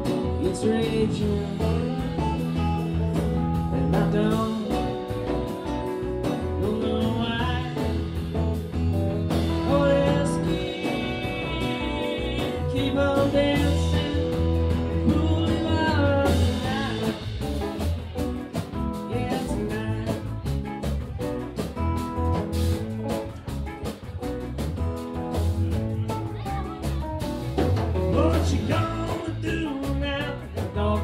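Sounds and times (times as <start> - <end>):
drum hits: 0.0 - 30.8
blues-rock band playing: 0.0 - 31.0.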